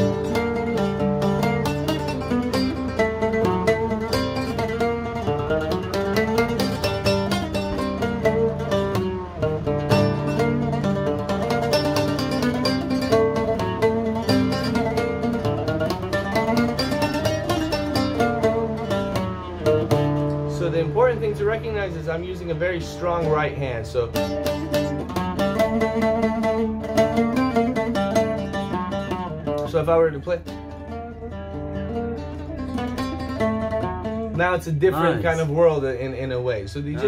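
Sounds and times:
solo oud plucked: 0.0 - 37.0.

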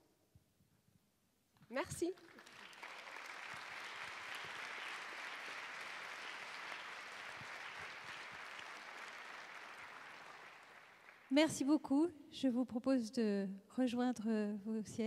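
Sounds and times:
audience applauding: 2.0 - 11.4.

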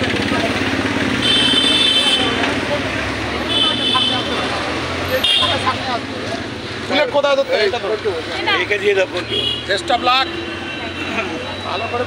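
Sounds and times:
crowd of voices: 0.0 - 12.0
traffic: 0.0 - 12.0.

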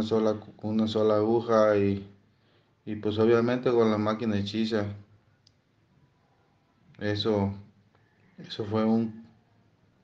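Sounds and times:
faint click: 5.4 - 5.6.

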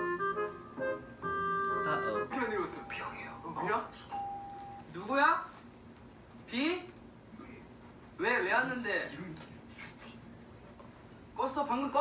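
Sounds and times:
doorbell tone ringing: 4.1 - 4.8.

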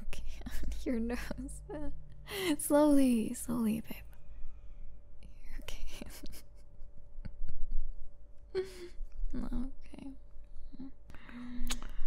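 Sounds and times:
woman whispering: 0.0 - 1.0, 5.3 - 6.2.

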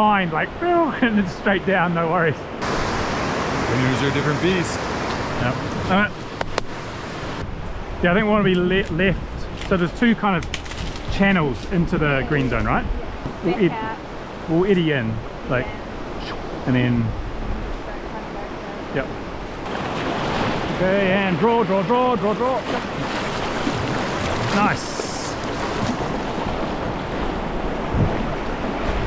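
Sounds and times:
whitewater rapids rushing: 2.6 - 6.0, 19.7 - 29.0
wind on microphone: 10.4 - 14.4, 15.1 - 21.1, 22.6 - 29.0.

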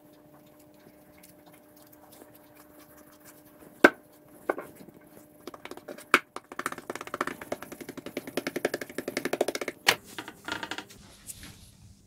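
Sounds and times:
fingertip tapping on dough: 5.4 - 9.8.

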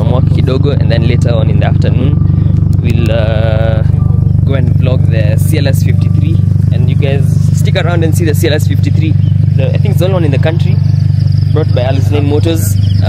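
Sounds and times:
car engine idling: 0.0 - 13.0
voices talking: 0.0 - 13.0.

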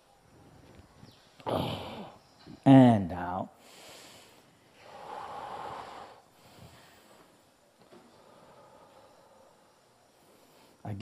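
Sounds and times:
faint breathing: 3.5 - 10.9
person exhaling breathily: 3.7 - 7.2.

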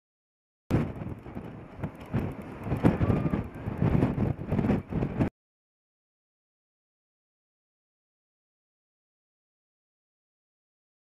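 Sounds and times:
rocket motor crackling rumble: 0.7 - 5.3.

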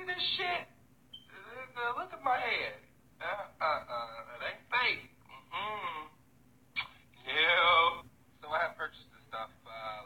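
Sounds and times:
man talking on a phone: 1.3 - 6.2, 6.8 - 10.0.

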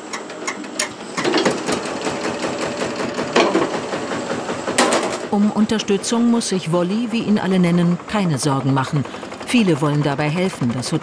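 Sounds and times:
small engine clattering: 0.0 - 11.0.

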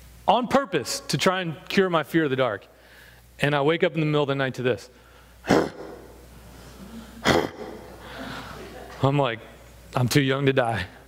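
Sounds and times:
man imitating deer snort: 5.4 - 6.2, 7.2 - 7.9.

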